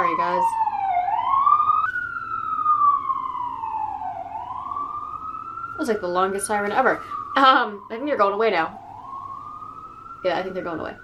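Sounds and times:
emergency vehicle siren wailing: 0.0s - 11.0s.

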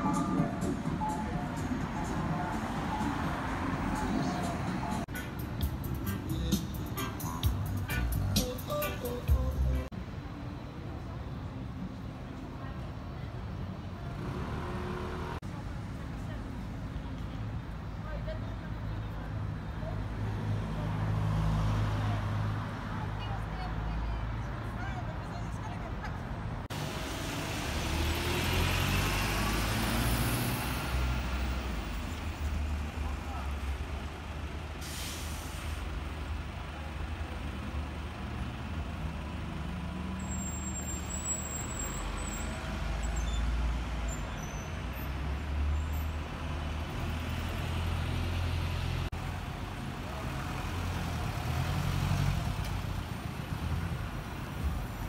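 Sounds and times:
passers-by talking: 0.0s - 5.2s, 15.4s - 26.7s
traffic engine rumble: 0.0s - 55.0s
short hiss: 34.8s - 35.8s.

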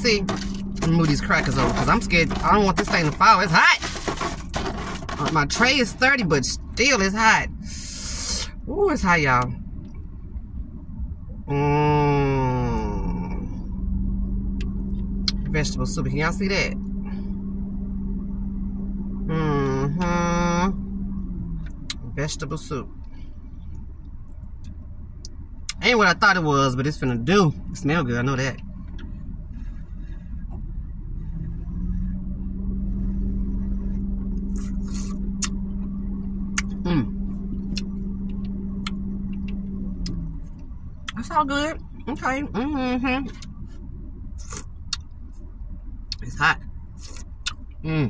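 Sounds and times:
car cabin rumble: 0.0s - 48.0s
woman speaking: 41.2s - 43.4s.

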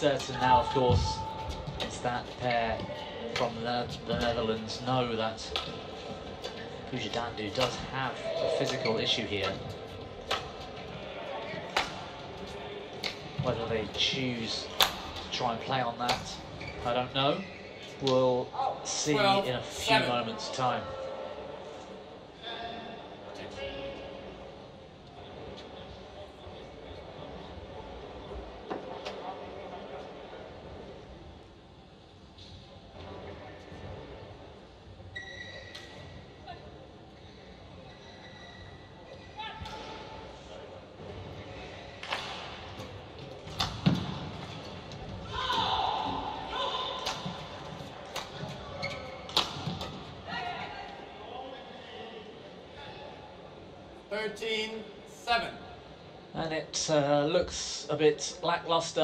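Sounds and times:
voices in hall: 0.0s - 59.0s
players shouting: 45.2s - 47.2s.

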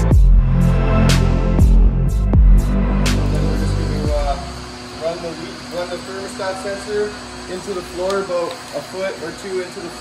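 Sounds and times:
electronic music with heavy bass: 0.0s - 4.7s.

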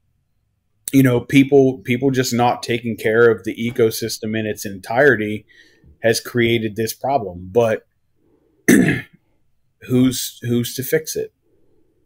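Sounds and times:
man speaking: 0.9s - 7.8s, 9.8s - 11.3s
man clearing his throat: 8.7s - 9.2s.

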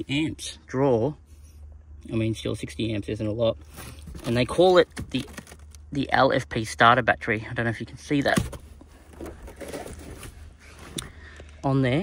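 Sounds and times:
rustling handling noise: 3.6s - 6.0s, 8.2s - 11.6s.

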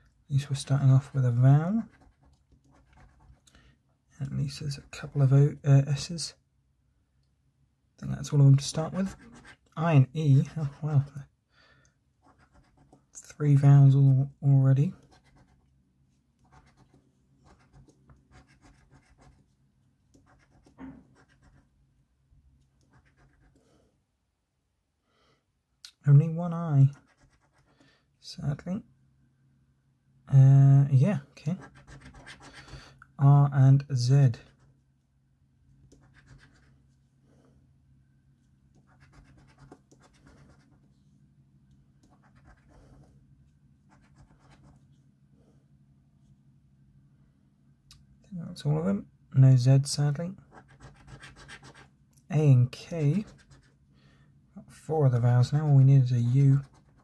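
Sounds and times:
coin scratching scratchcard: 50.5s - 51.9s.

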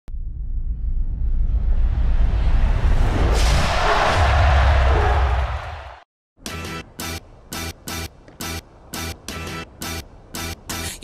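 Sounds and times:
deep low rumble: 0.1s - 3.4s
whoosh effect: 1.3s - 4.5s.

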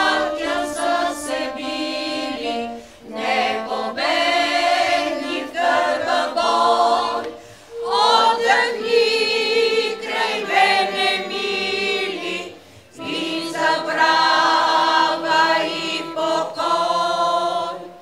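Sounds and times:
women's choir singing a cappella: 0.0s - 18.0s.

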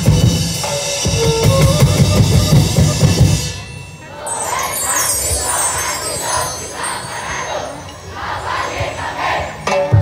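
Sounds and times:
crowd noise: 0.0s - 10.0s
dancers chanting rhythmic shouts: 4.1s - 10.0s.

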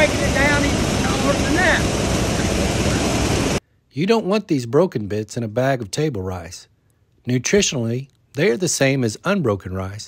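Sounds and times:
mill machinery running: 0.0s - 3.6s.

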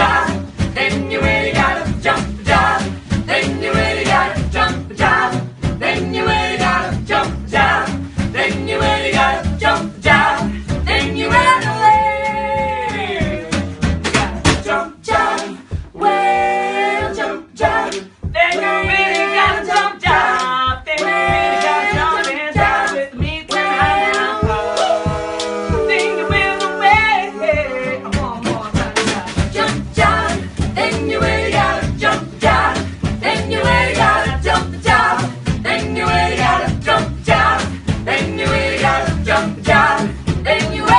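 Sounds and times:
band playing: 0.0s - 20.4s, 21.0s - 40.9s
bass line: 0.0s - 40.9s.

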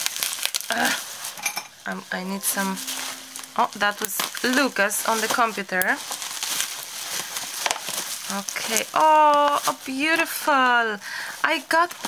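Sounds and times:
bubble wrap crinkling: 0.0s - 1.2s, 5.9s - 10.9s.

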